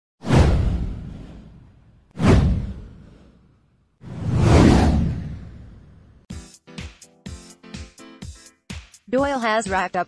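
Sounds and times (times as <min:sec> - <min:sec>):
whoosh sweeping into deep rumble: 0:00.2 - 0:06.3.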